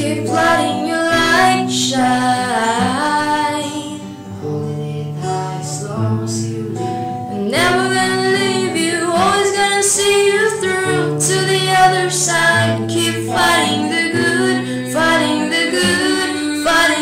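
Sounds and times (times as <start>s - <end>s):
acoustic guitar chords: 0.0s - 17.0s
woman singing: 0.0s - 17.0s.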